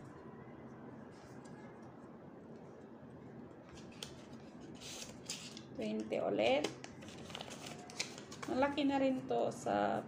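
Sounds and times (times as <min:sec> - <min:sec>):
paper envelope rustling: 0:07.0 - 0:08.6.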